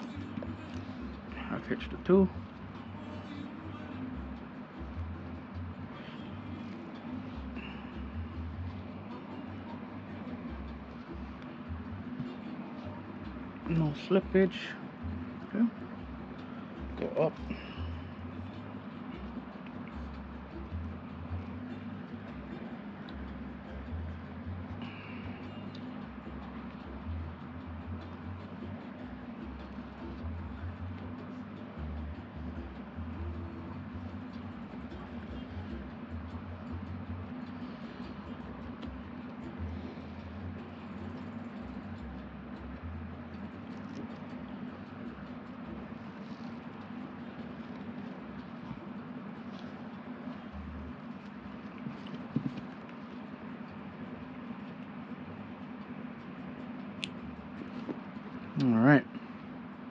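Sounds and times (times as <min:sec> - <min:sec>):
low background hum: 0:00.0 - 0:59.9.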